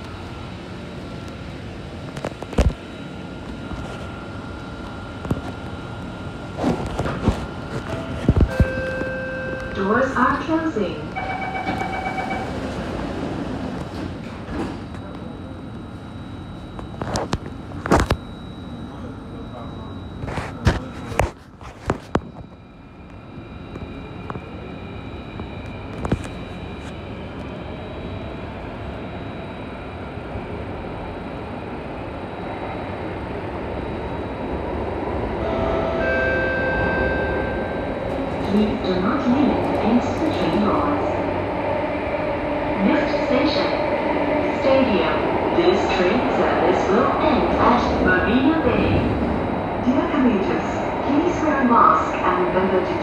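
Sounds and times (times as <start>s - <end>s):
train running rumble: 0.0s - 18.1s, 18.7s - 53.0s
train door chime: 7.8s - 10.1s, 11.1s - 12.8s, 35.4s - 40.9s.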